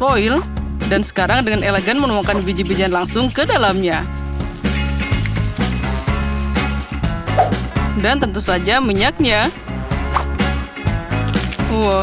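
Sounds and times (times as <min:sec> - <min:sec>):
background music: 0:00.0 - 0:12.0
popcorn kernels rattling into foil: 0:03.6 - 0:07.1.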